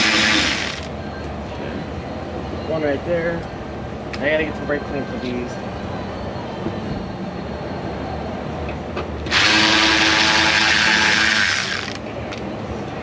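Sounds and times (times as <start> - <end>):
cordless power tool running: 0.0 - 0.9, 9.3 - 12.0.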